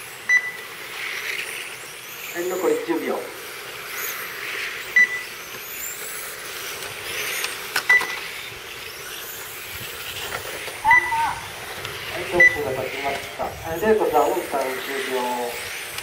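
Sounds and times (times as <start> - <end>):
high electric motor whines: 0.0 - 16.0
short electronic beeps: 0.3 - 0.7, 4.9 - 5.3, 7.9 - 8.3, 12.3 - 12.7.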